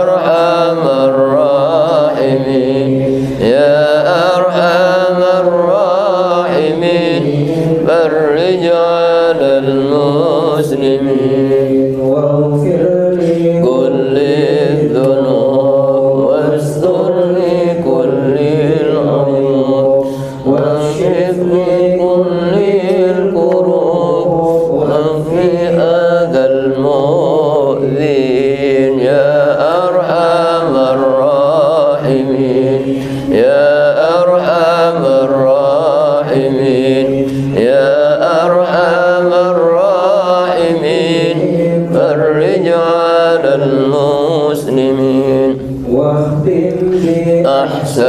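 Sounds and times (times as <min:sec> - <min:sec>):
man chanting into a microphone: 0:00.0 - 0:48.0.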